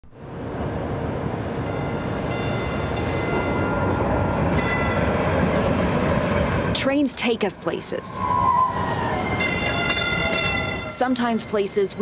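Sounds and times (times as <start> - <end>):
train running on tracks: 0.0 - 12.0
high-pitched wheel squeal: 7.6 - 10.9.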